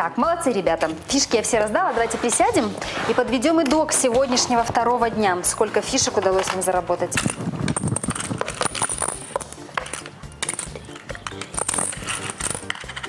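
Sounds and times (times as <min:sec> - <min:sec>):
background music: 0:00.0 - 0:13.0
plastic game counters clattering: 0:06.4 - 0:13.0.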